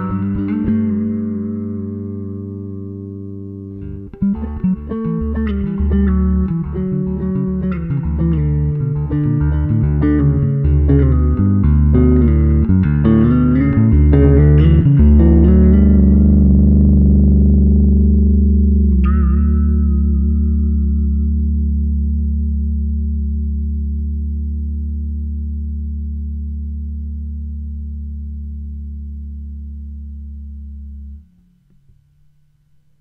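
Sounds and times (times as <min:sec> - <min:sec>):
electric bass guitar plucked: 0:00.0 - 0:32.8.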